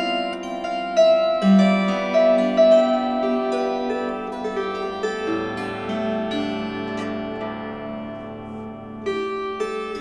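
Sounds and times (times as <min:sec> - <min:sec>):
plucked string lament melody: 0:00.0 - 0:10.0.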